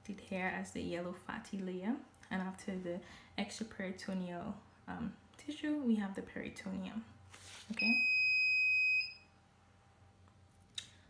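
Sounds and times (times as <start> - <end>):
paper rustling: 7.3 - 7.8.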